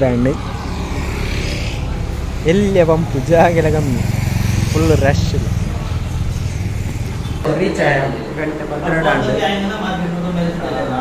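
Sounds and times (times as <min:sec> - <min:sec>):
small motorbike engine running: 0:00.0 - 0:07.5
man speaking: 0:02.4 - 0:05.6.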